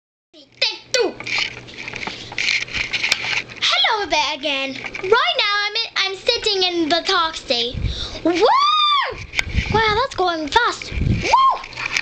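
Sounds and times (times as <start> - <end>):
girl squealing: 8.3 - 9.2, 11.2 - 11.7.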